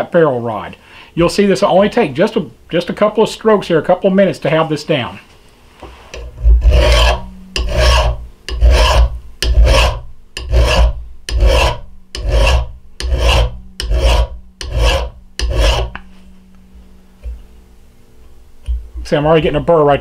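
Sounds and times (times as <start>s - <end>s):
file rasping on steel: 6.1s - 16.1s.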